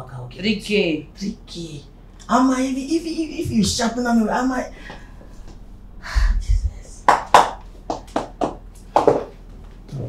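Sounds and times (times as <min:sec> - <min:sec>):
sharp hand slaps: 0:07.1 - 0:09.3.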